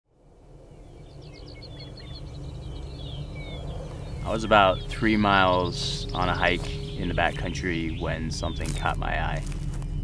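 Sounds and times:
low rumble: 0.1s - 10.0s
small birds chirping: 0.3s - 10.0s.

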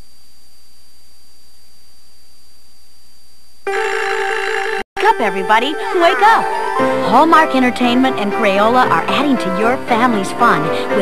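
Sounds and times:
thin high whine: 0.0s - 7.3s
tape hiss: 0.0s - 11.0s.

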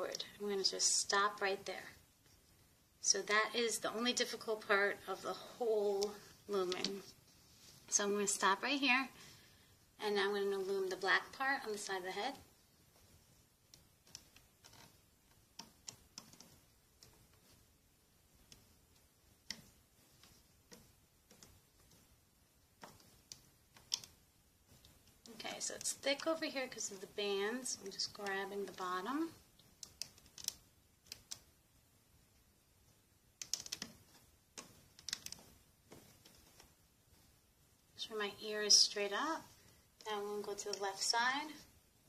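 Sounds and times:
loom hook clicking on plastic pins: 13.0s - 26.3s, 27.6s - 31.6s, 33.3s - 37.3s.

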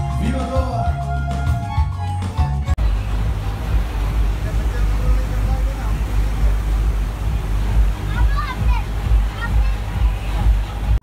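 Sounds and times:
boat engine rumble: 1.0s - 11.0s
churning wake: 2.8s - 11.0s.

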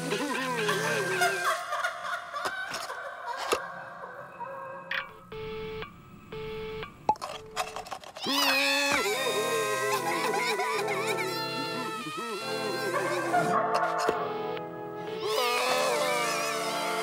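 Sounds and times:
cartoon character yelling: 8.2s - 13.6s
cartoon music: 9.0s - 17.0s.

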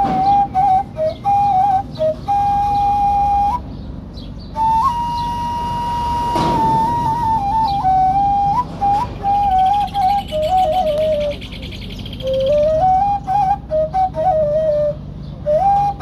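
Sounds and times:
flute playing slow melody: 0.0s - 16.0s.

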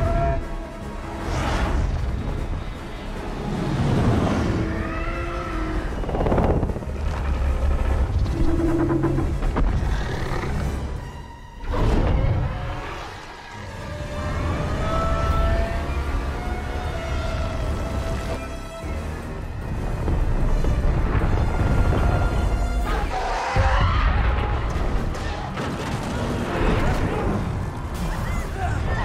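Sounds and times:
orchestral score: 0.0s - 29.0s.

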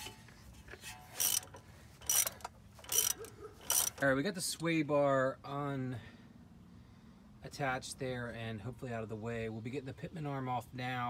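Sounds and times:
hand ratchet clicking: 0.8s - 4.1s.

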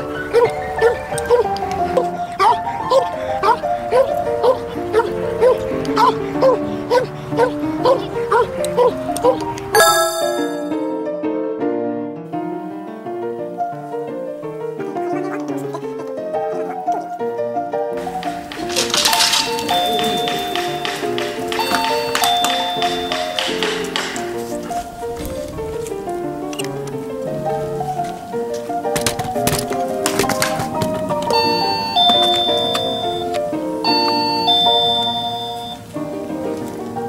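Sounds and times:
two-note electronic ding-dong chime: 9.8s - 11.0s, 21.6s - 23.4s, 31.4s - 35.8s
background music: 9.8s - 11.1s.

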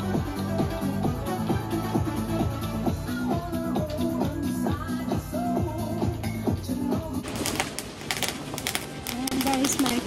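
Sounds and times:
pop dance music from television: 0.0s - 10.0s
fireworks popping and crackling: 7.2s - 10.0s.

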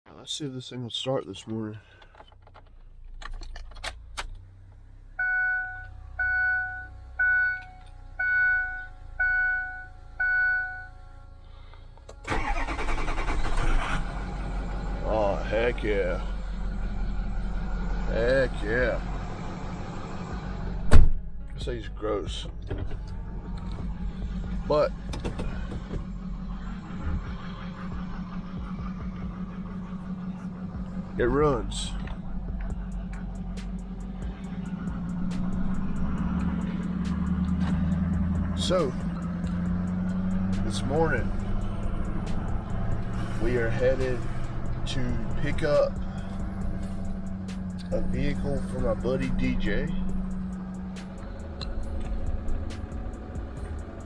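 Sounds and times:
dashboard warning chimes: 5.2s - 11.0s
truck engine cranking and starting: 12.0s - 54.0s.

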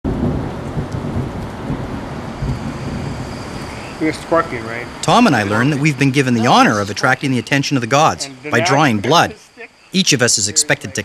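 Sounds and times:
low rumbling: 0.1s - 9.3s
rushing hiss of rain: 0.1s - 11.0s.

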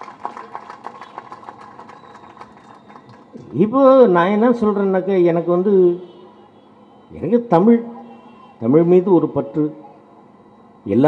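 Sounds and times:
man speaking into a microphone: 3.4s - 6.2s, 7.1s - 10.0s.

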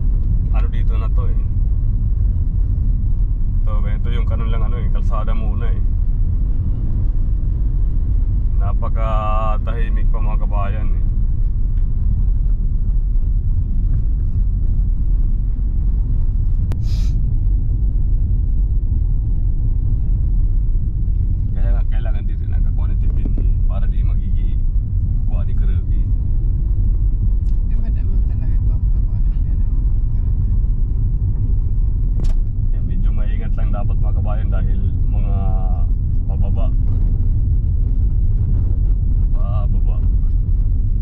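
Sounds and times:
car engine and tyre rumble: 0.0s - 41.0s.

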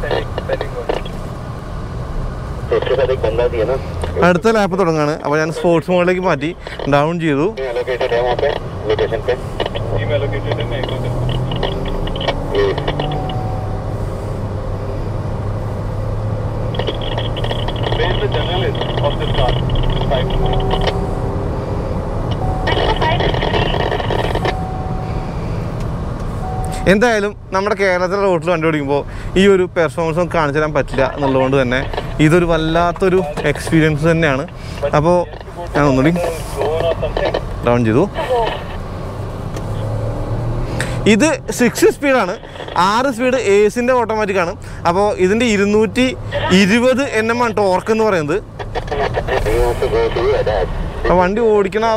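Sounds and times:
car engine and road noise: 0.0s - 51.9s.

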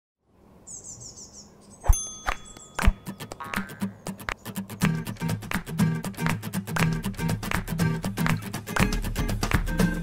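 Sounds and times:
high bird-like chirps: 0.6s - 5.4s
ringing chime: 1.9s - 3.3s
sharp percussive hits: 1.9s - 8.9s
pitched music: 3.0s - 10.0s.

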